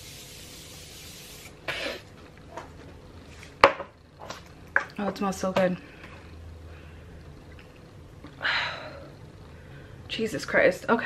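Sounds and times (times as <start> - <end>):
spray bottle hissing: 0.0 - 1.6.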